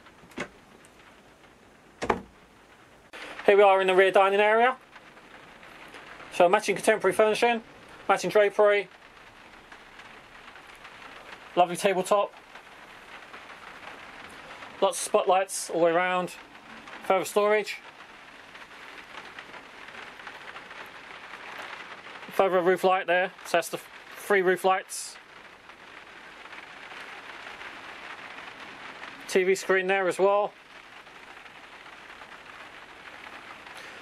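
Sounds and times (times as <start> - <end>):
quiet crackling hiss: 0.0 - 34.0.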